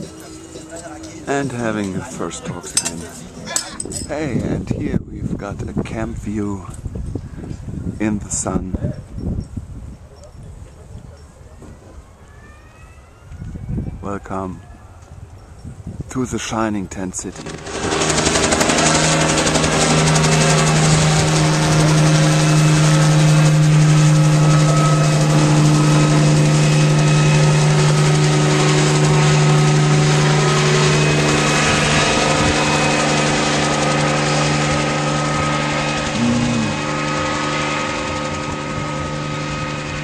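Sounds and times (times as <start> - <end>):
helicopter engine drone: 0.0 - 4.8, 17.2 - 40.0
rotor blades chopping: 17.2 - 40.0.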